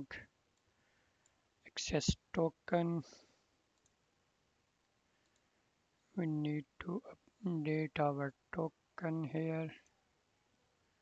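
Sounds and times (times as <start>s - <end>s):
faint clicks: 0.5s - 1.4s, 3.7s - 4.0s, 5.1s - 6.2s.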